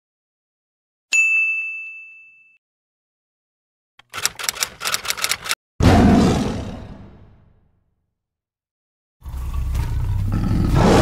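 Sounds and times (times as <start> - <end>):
bright ding: 1.1 - 2.6
rapid sharp clicks: 4.0 - 5.6.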